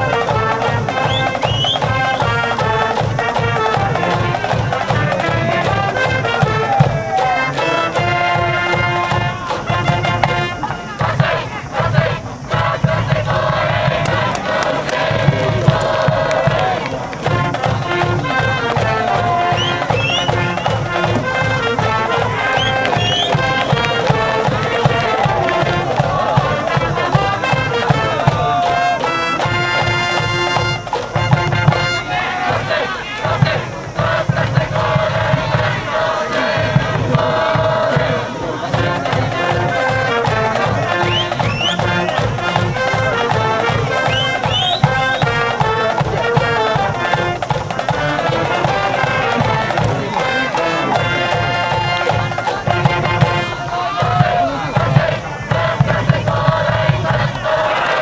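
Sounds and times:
crowd chanting in unison: 0:00.0 - 0:58.0
steady drum beat: 0:00.0 - 0:58.0.

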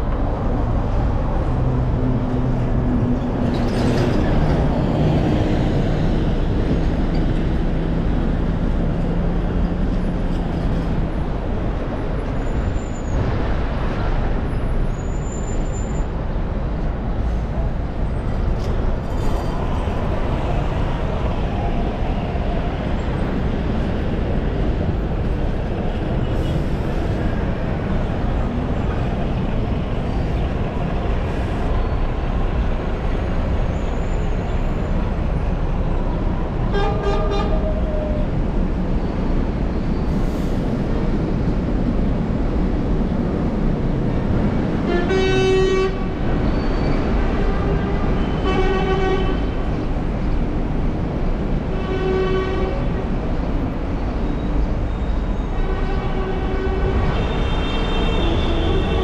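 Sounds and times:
road traffic: 0:00.0 - 0:59.0.

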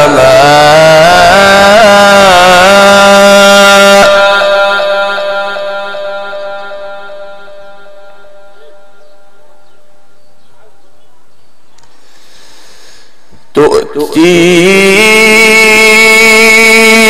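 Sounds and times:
man reciting through loudspeakers: 0:00.0 - 0:07.6, 0:13.4 - 0:17.0
sound system echo: 0:00.0 - 0:10.8, 0:12.6 - 0:17.0.

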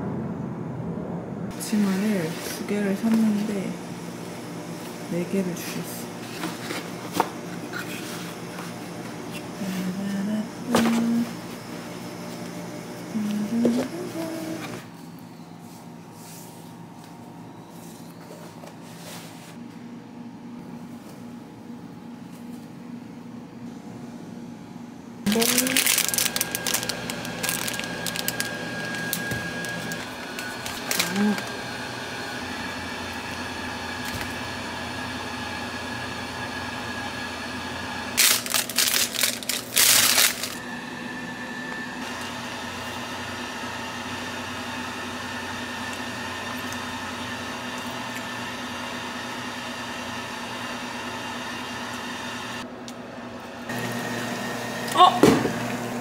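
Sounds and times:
plastic food wrapping crinkling: 0:25.3 - 0:31.6, 0:38.2 - 0:40.6.

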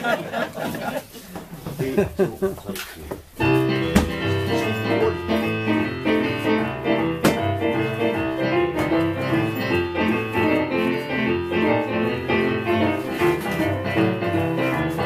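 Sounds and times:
person laughing: 0:01.8 - 0:02.8
blues boogie piano piece: 0:03.2 - 0:15.0.

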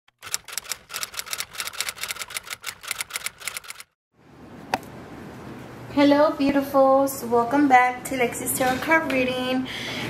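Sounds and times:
typewriter keys clacking: 0:00.1 - 0:03.9.

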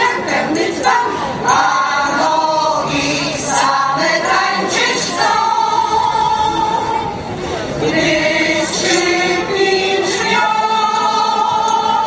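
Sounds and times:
mixed choir singing in harmony: 0:00.0 - 0:12.0.

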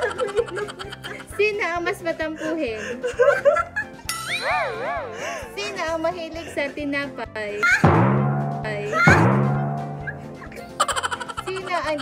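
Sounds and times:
loud high-pitched laughter: 0:00.0 - 0:01.3, 0:07.6 - 0:07.9, 0:10.8 - 0:12.0
deep booming drum hit: 0:07.8 - 0:10.6.

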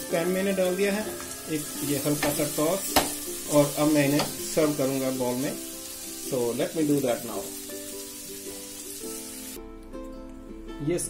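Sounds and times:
vegetables sizzling in a frying pan: 0:00.0 - 0:09.6
background music: 0:00.0 - 0:11.0.

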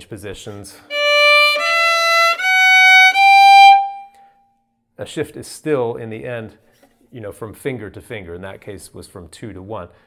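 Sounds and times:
solo violin slow rising passage: 0:00.9 - 0:04.2.

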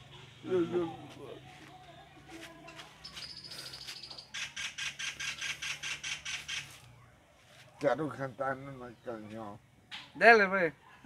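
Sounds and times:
rapid sharp bird chirps: 0:03.0 - 0:06.9
bird calling: 0:03.0 - 0:07.1.

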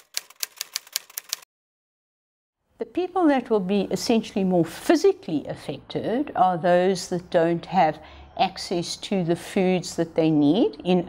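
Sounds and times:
typewriter keys clicking: 0:00.0 - 0:01.4.

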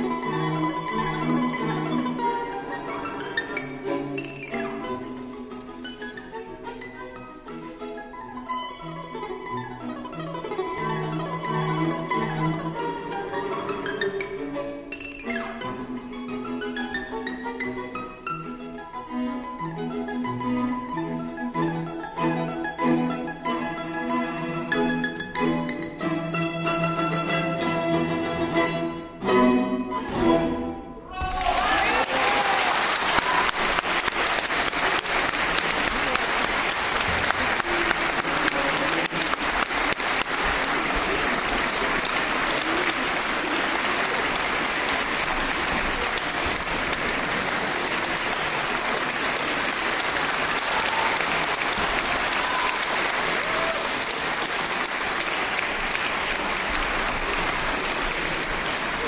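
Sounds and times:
string quartet chords: 0:00.0 - 0:31.1, 0:34.0 - 0:50.6
plucked solo instrument: 0:00.0 - 0:31.4
audience applauding: 0:31.1 - 0:59.0.

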